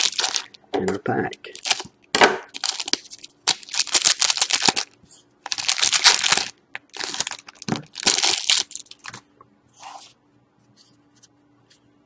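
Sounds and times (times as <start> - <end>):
foil wrapper crinkling and tearing: 0.0 - 0.6, 1.5 - 1.9, 2.5 - 9.2.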